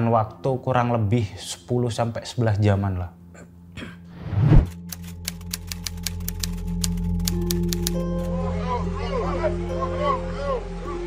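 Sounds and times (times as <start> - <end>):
whoosh: 4.2 - 4.8
fast ticking clicks: 4.9 - 8.1.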